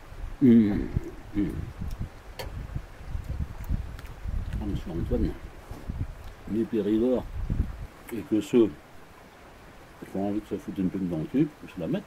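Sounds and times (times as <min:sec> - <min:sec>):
low irregular thuds: 0:01.5 - 0:06.4
man chewing food: 0:03.0 - 0:04.6, 0:05.6 - 0:06.5.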